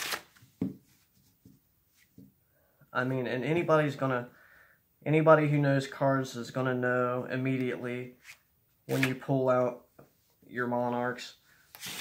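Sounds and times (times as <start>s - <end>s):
playing cards shuffling: 0.0s - 2.2s, 8.2s - 9.2s, 11.8s - 12.0s.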